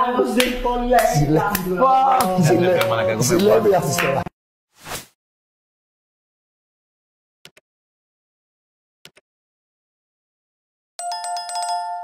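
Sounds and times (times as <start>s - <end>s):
bright bell chime: 11.0s - 12.0s.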